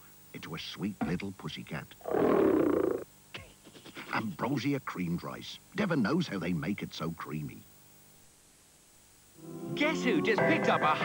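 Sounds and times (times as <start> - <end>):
cartoon cat purring: 2.0 - 3.0.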